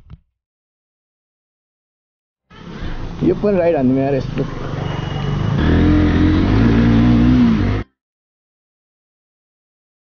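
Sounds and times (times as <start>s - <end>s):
motorcycle engine revving: 4.6s - 7.9s.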